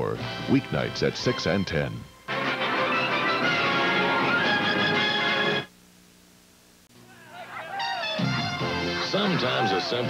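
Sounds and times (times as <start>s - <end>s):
tv bumper music: 0.0s - 5.7s, 8.0s - 10.0s
faint low hum: 5.7s - 8.0s.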